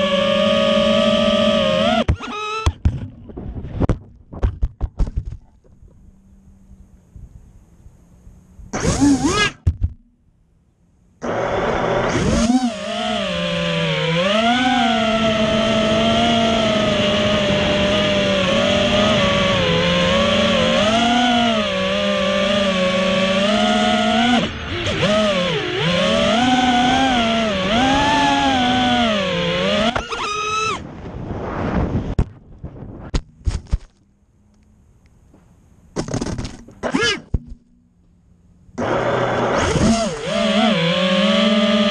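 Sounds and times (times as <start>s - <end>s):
drone motors whining: 0.0s - 3.4s, 5.6s - 10.0s, 11.0s - 30.9s, 36.6s - 41.9s.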